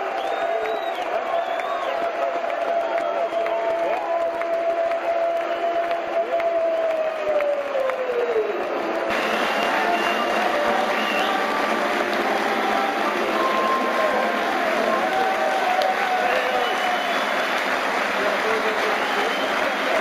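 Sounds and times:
fans applauding: 0.0s - 20.0s
football crowd cheering: 0.0s - 20.0s.

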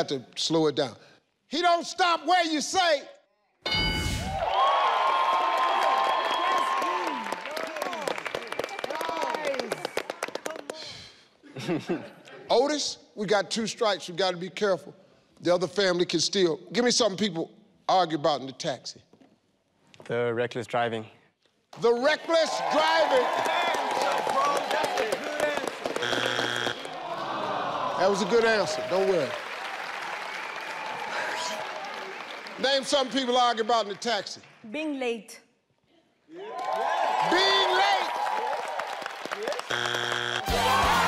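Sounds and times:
audience clapping: 4.4s - 11.3s, 21.8s - 35.0s, 36.5s - 41.0s
game show buzzer: 26.0s - 27.0s, 39.6s - 41.0s
crowd groaning: 40.4s - 41.0s.

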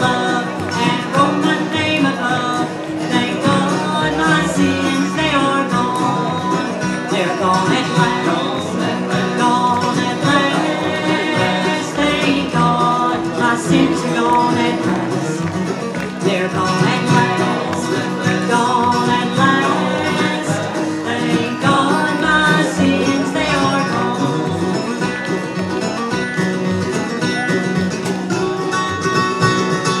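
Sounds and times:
bluegrass band playing a hymn: 0.0s - 30.0s.

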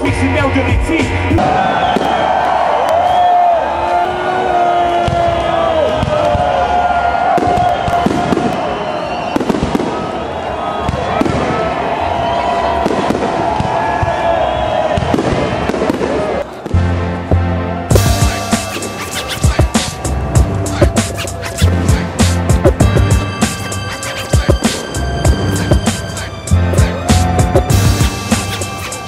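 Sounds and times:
bass-heavy music: 0.0s - 1.4s, 16.8s - 29.0s
crowd voices: 0.0s - 29.0s
fireworks bangs and crackles: 1.3s - 2.6s, 4.9s - 17.0s, 17.9s - 20.3s, 20.9s - 29.0s.

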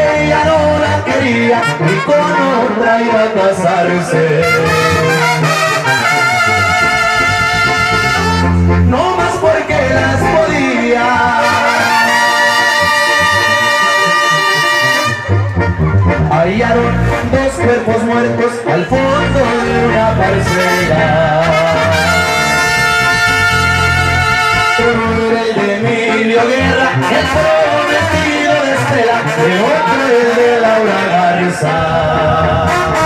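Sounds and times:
trumpets and trombones chord: 0.0s - 3.2s, 4.3s - 33.0s
brass band playing: 0.0s - 33.0s
low sousaphone note: 4.3s - 30.6s.

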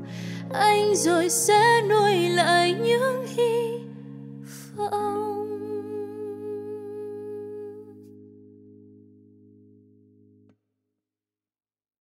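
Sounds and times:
person singing a ballad: 0.0s - 8.1s
sustained acoustic chord: 0.0s - 10.5s.

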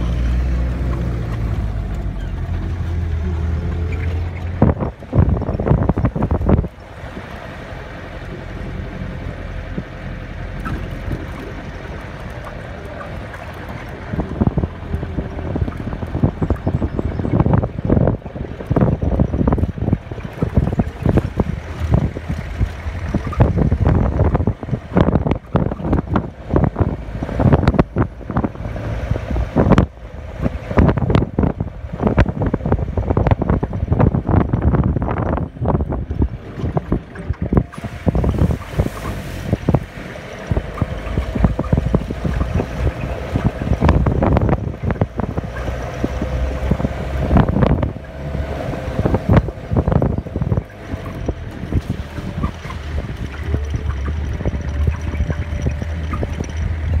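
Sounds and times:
vehicle knocks and rattles: 0.0s - 6.8s, 9.0s - 57.0s
engine low rumble: 0.0s - 57.0s.

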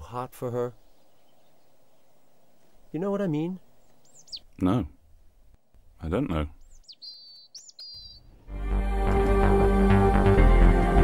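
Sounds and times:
high bird chirps: 0.7s - 4.6s, 6.5s - 8.4s.

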